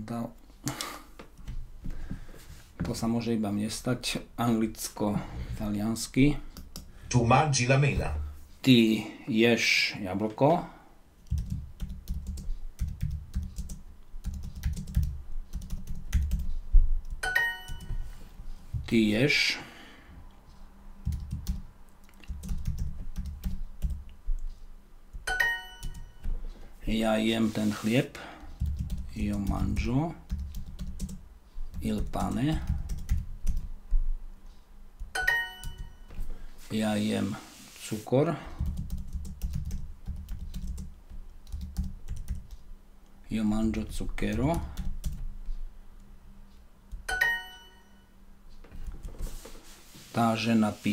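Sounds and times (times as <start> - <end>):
typing on computer keyboard: 11.2 - 18.0, 21.0 - 24.0, 28.6 - 33.7, 38.6 - 42.6
bright ringing chime: 17.2 - 18.0, 25.3 - 26.2, 35.2 - 36.1, 47.1 - 48.2.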